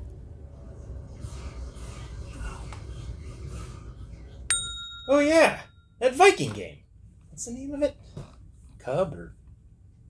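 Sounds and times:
bright bell ding: 0:04.5 - 0:06.0.

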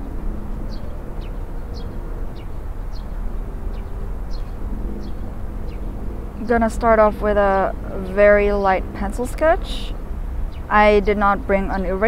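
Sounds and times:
bird chirping: 0:00.7 - 0:06.9.

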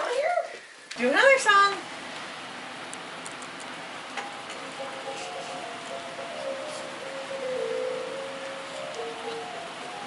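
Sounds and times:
steady hiss: 0:00.1 - 0:10.0
musical toy electronic tune: 0:05.1 - 0:10.0.

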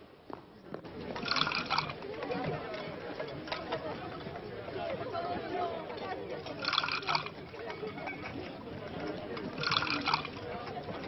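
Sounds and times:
crowd voices: 0:00.0 - 0:11.0
liquid pouring into metal pots: 0:01.2 - 0:02.0, 0:06.6 - 0:07.4, 0:09.6 - 0:10.4.

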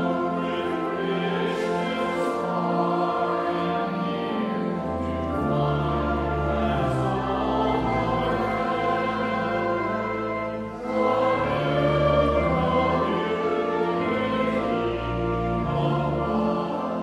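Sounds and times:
congregation singing a hymn: 0:00.0 - 0:17.0
organ accompaniment: 0:00.0 - 0:17.0.

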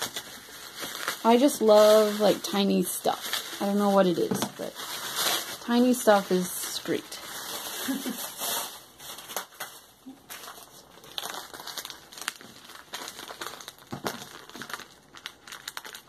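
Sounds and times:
plastic mailer crinkling: 0:00.0 - 0:16.0.

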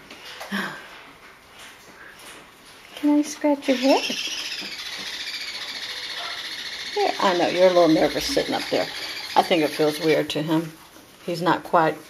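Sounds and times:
parrot chattering: 0:03.6 - 0:10.3.

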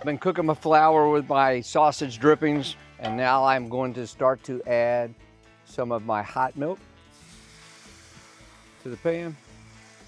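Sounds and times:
background music: 0:00.0 - 0:10.0
milk sizzling in hot skillet: 0:07.0 - 0:10.0.

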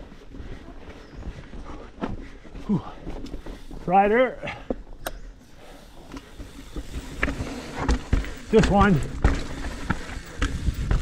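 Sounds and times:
bike knocking and rattling: 0:05.9 - 0:11.0
tyre and wind rumble: 0:06.0 - 0:11.0.

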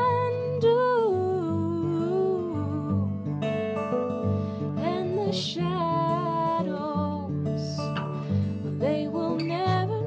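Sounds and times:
acoustic guitar: 0:00.0 - 0:10.0.

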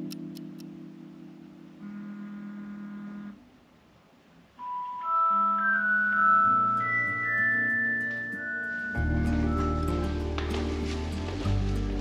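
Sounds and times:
low held electronic tone: 0:01.7 - 0:03.4
phone alarm high tone: 0:04.6 - 0:10.0.

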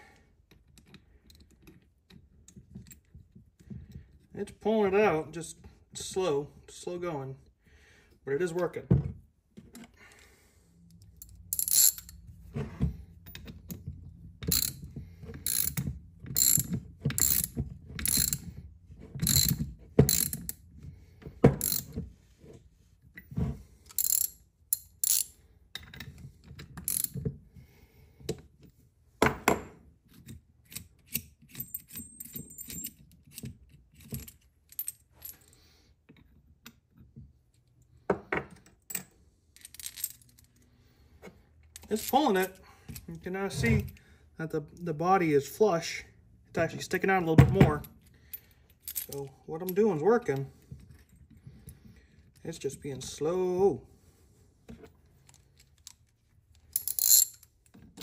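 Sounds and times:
metal clinks of socket and washers: 0:10.9 - 0:12.2, 0:13.2 - 0:13.8, 0:14.4 - 0:18.5, 0:19.2 - 0:20.6, 0:21.6 - 0:22.0, 0:23.9 - 0:27.2, 0:30.2 - 0:35.5, 0:48.0 - 0:49.8, 0:55.2 - 0:58.0
ratchet wrench clicking: 0:11.5 - 0:12.1, 0:14.5 - 0:14.8, 0:15.4 - 0:15.8, 0:16.4 - 0:18.4, 0:19.2 - 0:20.6, 0:21.6 - 0:21.9, 0:23.9 - 0:25.3, 0:26.9 - 0:27.1.

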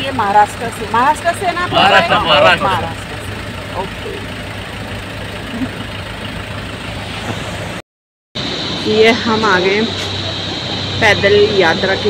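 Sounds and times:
car engine and road rumble: 0:00.0 - 0:07.8, 0:08.4 - 0:12.0.

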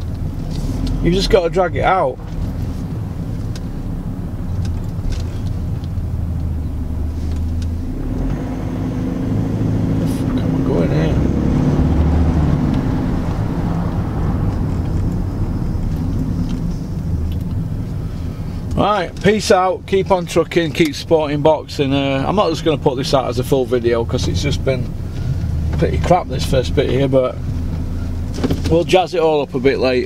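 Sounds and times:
car engine and road rumble: 0:00.0 - 0:30.0.

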